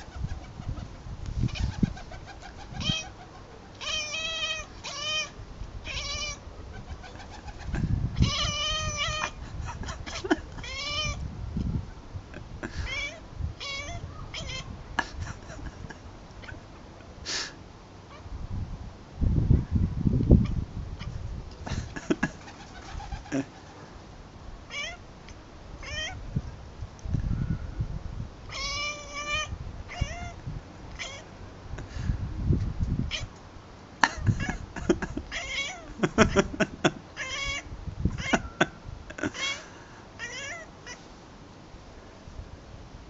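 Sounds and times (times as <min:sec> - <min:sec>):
cat chattering and chirping: 0:00.0 - 0:11.2, 0:12.7 - 0:15.6, 0:21.8 - 0:23.8, 0:24.7 - 0:25.0, 0:28.5 - 0:30.4, 0:31.0 - 0:31.3, 0:34.1 - 0:39.6.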